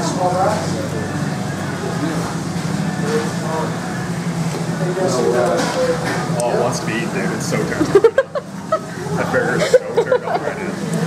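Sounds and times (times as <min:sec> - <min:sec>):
faint murmured voices: 0:00.0 - 0:11.0
low mechanical hum: 0:00.0 - 0:11.0.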